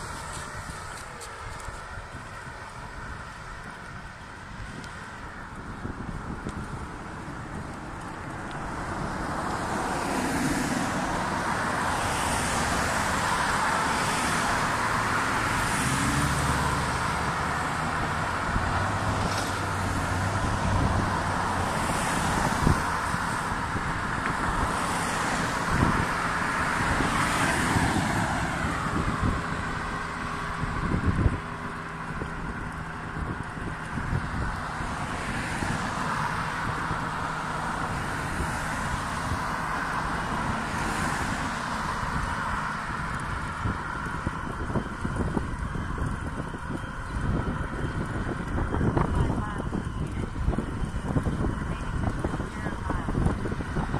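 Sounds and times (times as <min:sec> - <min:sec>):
cars driving past: 0:00.0 - 0:53.9.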